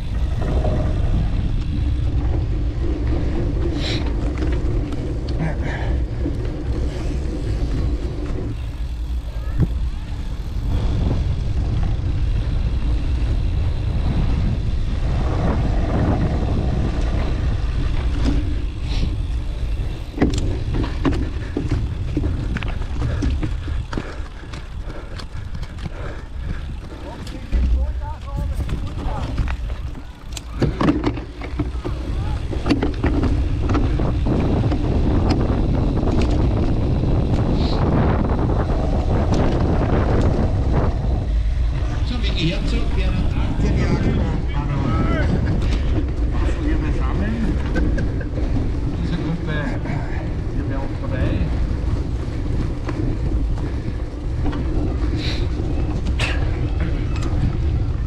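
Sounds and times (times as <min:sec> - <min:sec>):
wind buffeting microphone: 0:00.0 - 0:58.0
bike knocks: 0:17.2 - 0:36.7.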